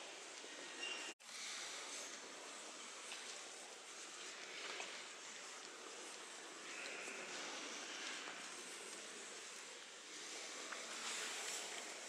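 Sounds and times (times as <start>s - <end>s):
cathedral interior background noise: 0.0s - 12.0s.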